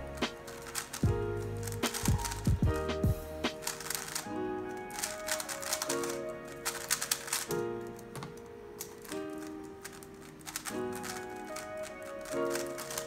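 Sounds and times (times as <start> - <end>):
puzzle cube clicking: 0.0 - 4.3, 4.9 - 13.0
background music: 0.0 - 13.0.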